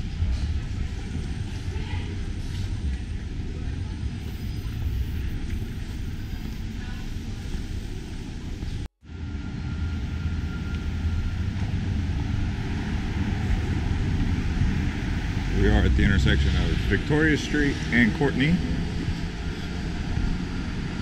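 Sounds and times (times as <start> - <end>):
city street ambience: 0.0 - 21.0
low rumble: 0.0 - 21.0.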